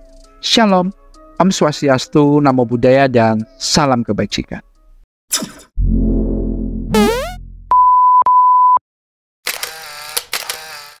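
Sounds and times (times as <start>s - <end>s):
buzzy pitched effect with clicks: 6.9s - 7.4s
high censor beep: 7.0s - 8.8s.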